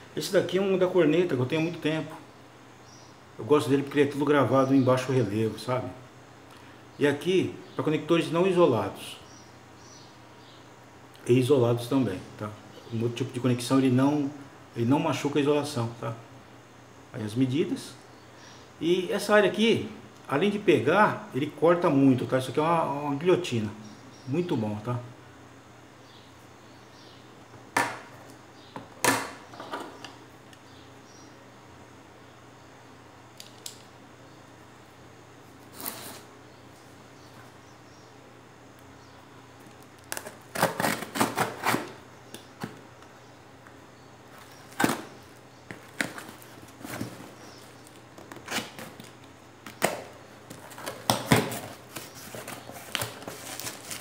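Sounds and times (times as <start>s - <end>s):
utility knife slicing packing tape: 40.1s - 41.9s
cardboard and bubble wrap rustling: 44.3s - 54.0s.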